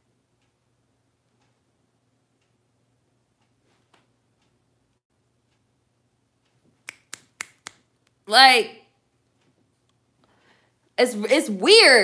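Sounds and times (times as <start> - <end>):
finger snaps: 6.8 - 8.2.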